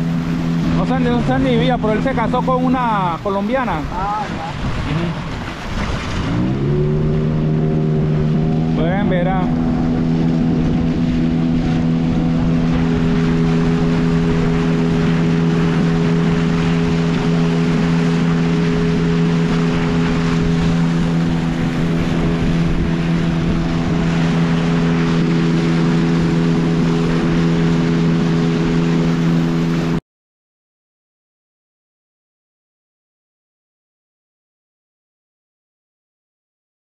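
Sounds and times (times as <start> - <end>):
outboard motor running: 0.0 - 30.0
water rushing along hull: 0.0 - 30.0.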